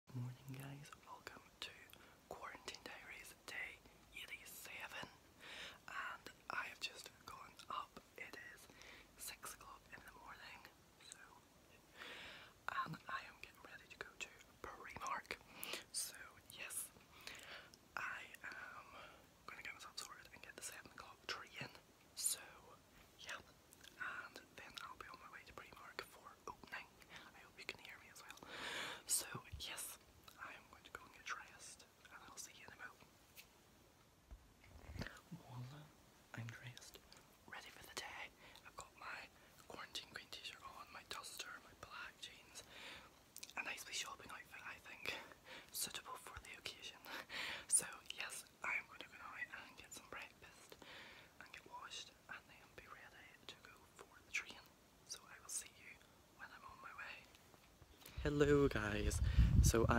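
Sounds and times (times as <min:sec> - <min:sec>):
man whispering: 0:00.1 - 0:05.1, 0:05.9 - 0:11.8, 0:12.7 - 0:16.9, 0:18.0 - 0:28.4, 0:29.1 - 0:33.0, 0:34.8 - 0:42.7, 0:43.5 - 0:50.7, 0:51.4 - 0:57.3, 0:58.0 - 0:59.9.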